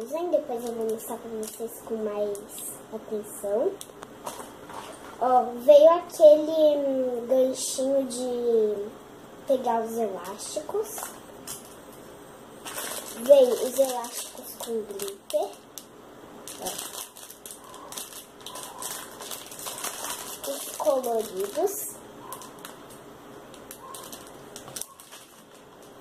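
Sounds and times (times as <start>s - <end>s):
plastic bag crinkling: 0.5s - 2.7s, 3.7s - 5.3s, 10.2s - 11.9s, 12.6s - 26.0s.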